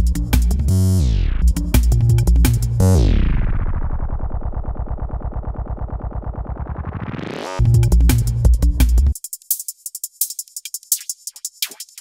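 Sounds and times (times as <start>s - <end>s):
drum beat: 0.0s - 0.7s, 1.4s - 2.9s, 7.6s - 12.0s
synth bass loop through filter: 0.0s - 9.2s.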